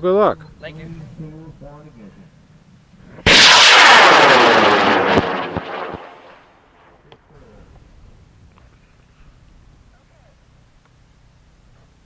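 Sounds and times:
sharp crackles: 3.2 - 6.9
rocket motor roaring: 3.3 - 6.4.

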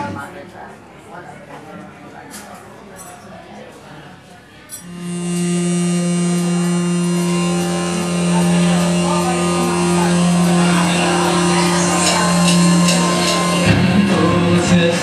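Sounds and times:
cymbal strikes: 4.8 - 15.0
guitar notes: 4.8 - 15.0
low droning bass note: 4.8 - 15.0.

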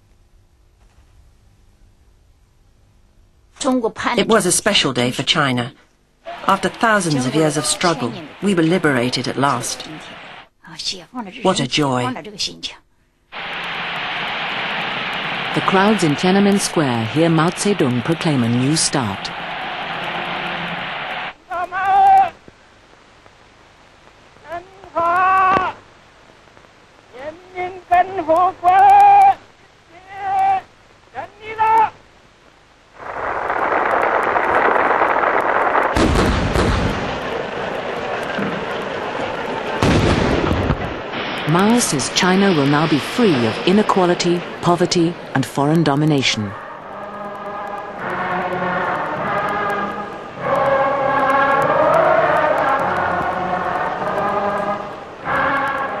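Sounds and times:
man speaking formally: 6.3 - 8.7, 41.5 - 46.6
choir singing long held notes: 6.3 - 10.4, 13.4 - 21.4, 46.6 - 56.0
faint clicks: 49.0 - 53.4.

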